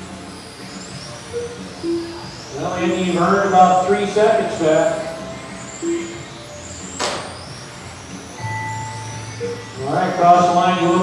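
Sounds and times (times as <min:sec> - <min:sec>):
low hum: 0:00.0 - 0:11.0
rc car motors whining: 0:00.0 - 0:11.0
steady electronic tone: 0:00.0 - 0:11.0.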